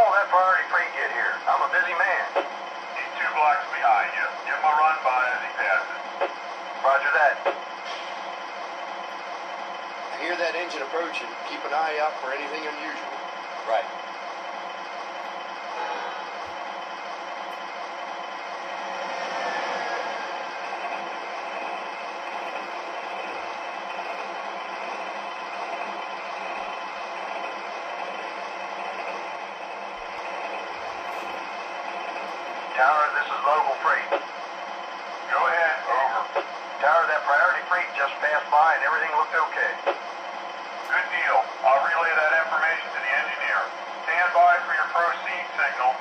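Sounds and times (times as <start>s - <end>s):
model locomotive diesel sound: 0.0s - 46.0s.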